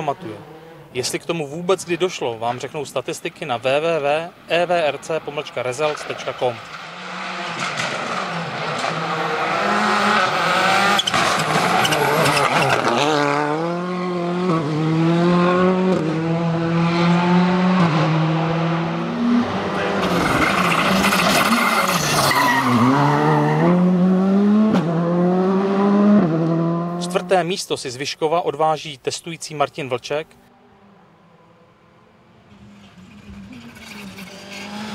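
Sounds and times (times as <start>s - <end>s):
rally car engine revving: 5.9s - 27.4s, 31.3s - 34.9s.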